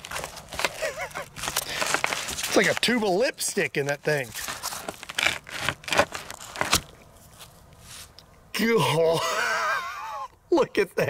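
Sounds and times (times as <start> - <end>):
faint rustling: 0.0 - 8.2
scratchy crackling of fabric: 4.2 - 6.8.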